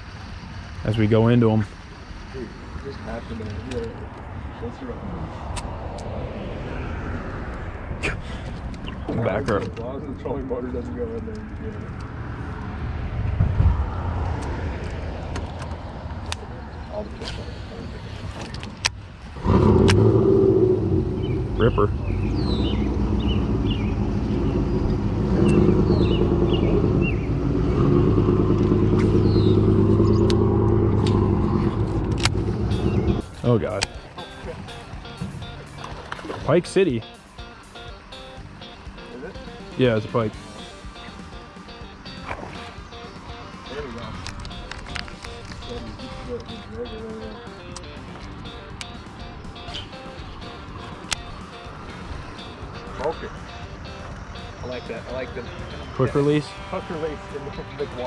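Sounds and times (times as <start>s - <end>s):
steady low rumble: 0.0s - 37.2s
birds chirping: 19.4s - 58.0s
sharp clicks: 31.8s - 34.0s, 44.2s - 45.8s.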